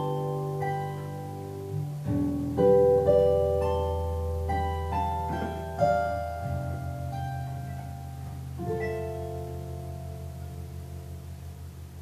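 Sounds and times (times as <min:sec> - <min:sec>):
harp guitar chord ringing: 0:00.0 - 0:12.0.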